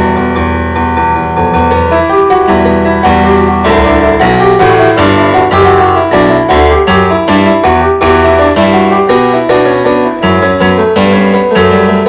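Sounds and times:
digital piano improvisation: 0.0 - 12.0.

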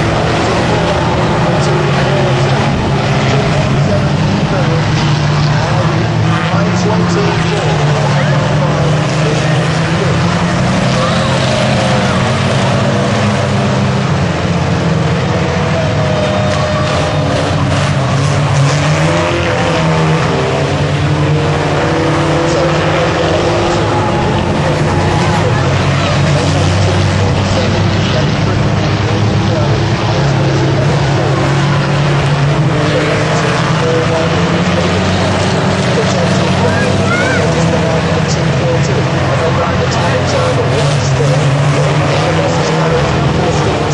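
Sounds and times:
crowd noise: 0.0 - 43.9
racing engines revving past: 0.0 - 43.9.

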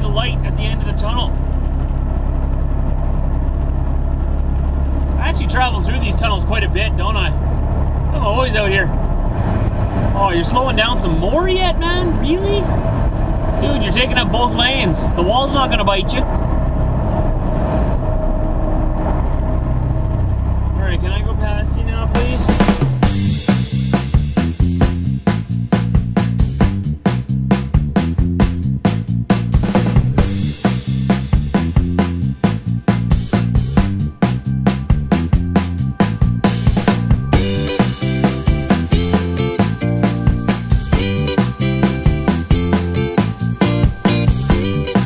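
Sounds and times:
road noise: 0.0 - 45.0
truck engine and tyre drone: 0.0 - 45.0
music with regular beat: 22.2 - 45.0.

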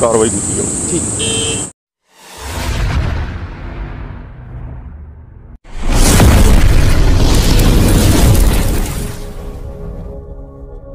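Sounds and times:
cinematic boom rumble: 2.2 - 10.0
music: 9.4 - 10.9.

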